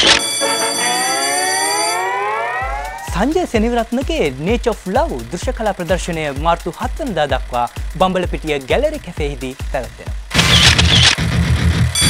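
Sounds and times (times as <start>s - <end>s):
electronic tones sweeping upward: 0.0s - 3.4s.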